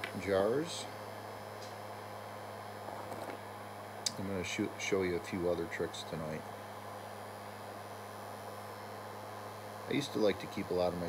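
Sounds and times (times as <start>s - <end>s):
heat gun humming and hissing: 0.0s - 11.0s.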